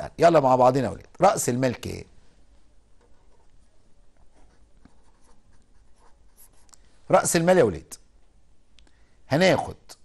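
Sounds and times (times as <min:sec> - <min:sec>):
pen scratching on paper: 0:04.3 - 0:06.7.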